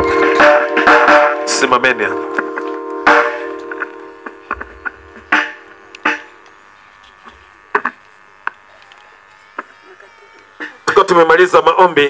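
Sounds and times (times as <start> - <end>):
sustained musical chord: 0.0 - 6.8.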